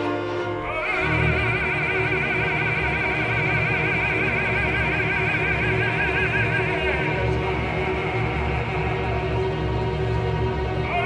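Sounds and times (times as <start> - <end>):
chamber orchestra accompaniment: 0.0 - 11.0
operatic singer holding high note: 0.5 - 9.6.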